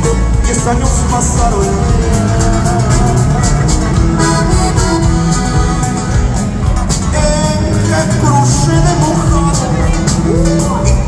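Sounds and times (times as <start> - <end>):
live band with accordion: 0.0 - 11.0.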